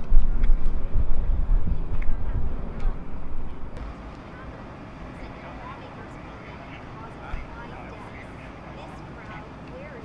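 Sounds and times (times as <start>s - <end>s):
street noise: 0.0s - 10.0s
faint distant voices: 0.8s - 10.0s.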